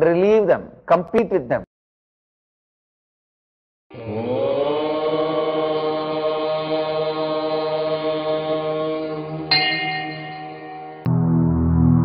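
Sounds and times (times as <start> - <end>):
long chanted tone: 3.9 - 11.1
steady low drone: 11.0 - 12.0.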